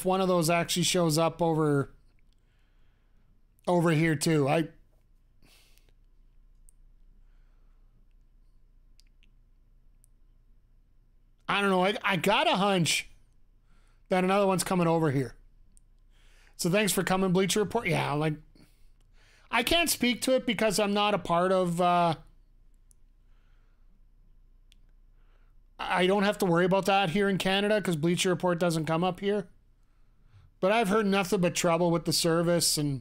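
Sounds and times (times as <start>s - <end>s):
faint low hum: 0.0s - 33.0s
faint click: 24.6s - 25.0s.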